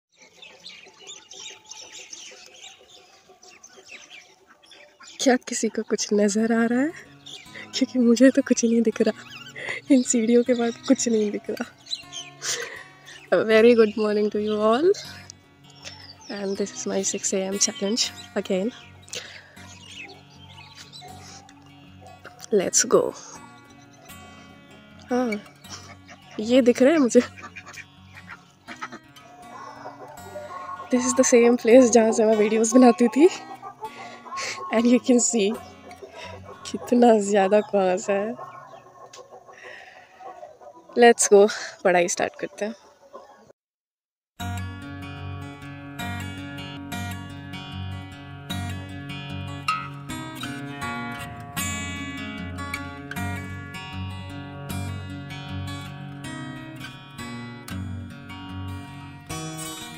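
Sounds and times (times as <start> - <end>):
many birds chirping: 0.1 - 43.5, 46.0 - 59.9
ducks calling: 0.2 - 43.5, 45.6 - 59.9
quiet acoustic music: 5.1 - 39.4, 44.4 - 59.9.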